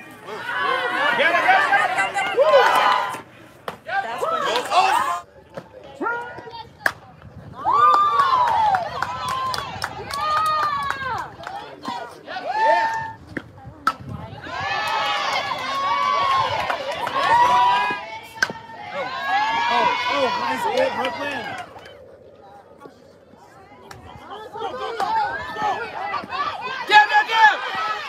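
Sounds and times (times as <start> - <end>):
people cheering and shouting: 0.0 - 5.3, 7.5 - 13.3, 14.2 - 22.2, 24.1 - 28.0.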